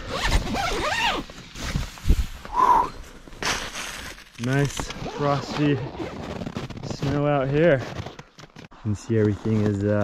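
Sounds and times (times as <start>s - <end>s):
tent door zipper rasping: 0.0s - 1.8s, 4.8s - 10.0s.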